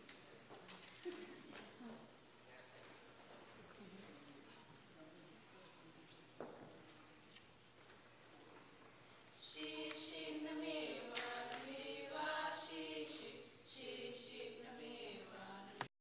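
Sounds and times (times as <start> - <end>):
group singing unaccompanied: 9.4 - 15.9.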